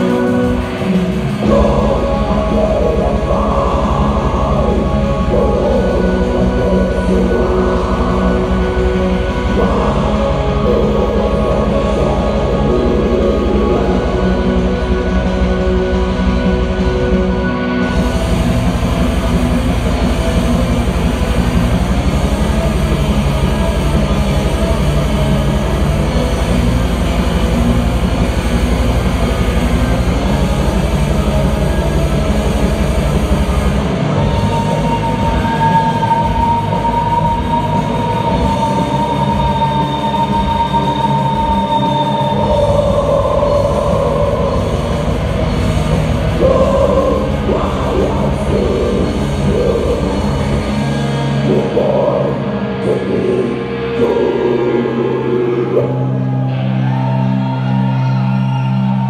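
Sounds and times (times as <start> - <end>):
black metal band playing live: 0.0 - 59.0.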